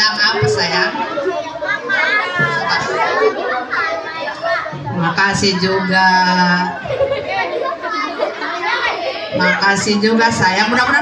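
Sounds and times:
children chattering: 0:00.0 - 0:11.0.

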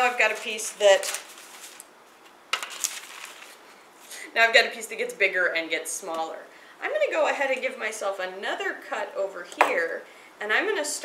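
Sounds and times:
newspaper rustling: 0:00.0 - 0:04.2.

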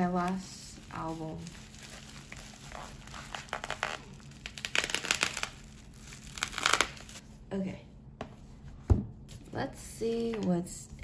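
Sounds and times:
bubble wrap crinkling: 0:00.0 - 0:07.2.

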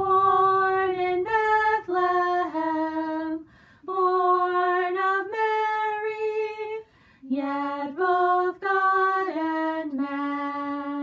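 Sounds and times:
woman singing a hymn: 0:00.0 - 0:11.0.

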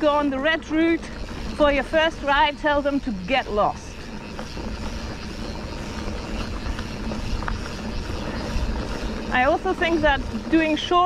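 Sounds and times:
bike tyre ride noise: 0:00.0 - 0:11.0
faint clicks and rattles: 0:00.0 - 0:11.0
wind rumble on microphone: 0:00.0 - 0:11.0.

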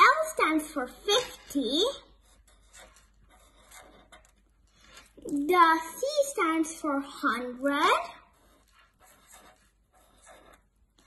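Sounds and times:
marker strokes on paper: 0:00.0 - 0:11.0.

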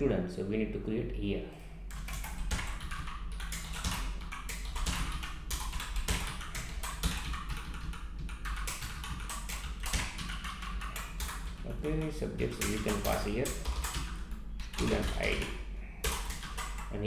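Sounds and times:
typing on keyboard: 0:01.9 - 0:17.0.

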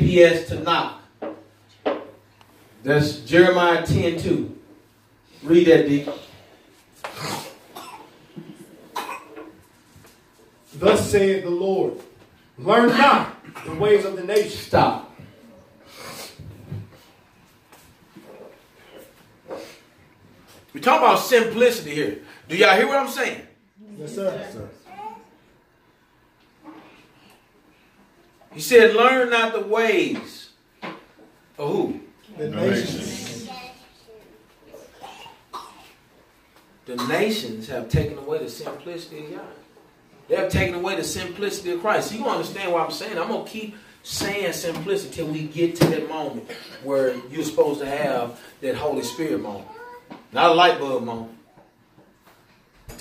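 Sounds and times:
faint room noise: 0:00.0 - 0:53.0
person coughing: 0:07.1 - 0:08.2, 0:09.0 - 0:09.5, 0:46.5 - 0:46.9.

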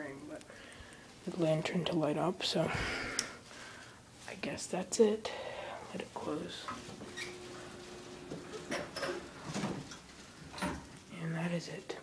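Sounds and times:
elevator hum: 0:06.7 - 0:10.0.

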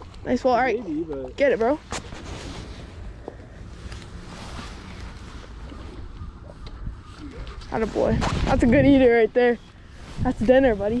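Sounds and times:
wind noise on microphone: 0:04.4 - 0:11.0.

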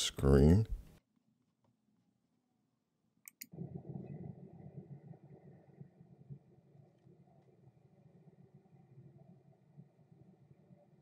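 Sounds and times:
sharp clicks: 0:03.2 - 0:03.5.

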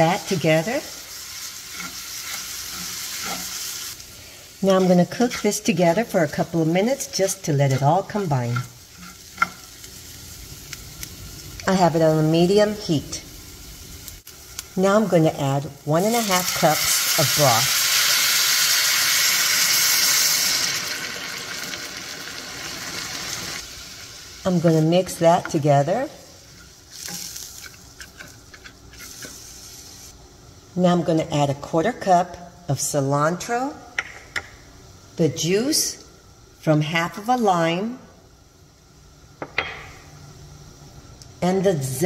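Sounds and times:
rice sizzling in a skillet: 0:00.0 - 0:30.2.

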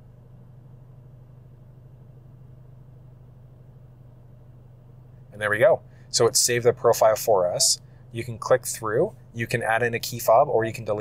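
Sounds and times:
faint low car cabin hum: 0:00.0 - 0:11.0.

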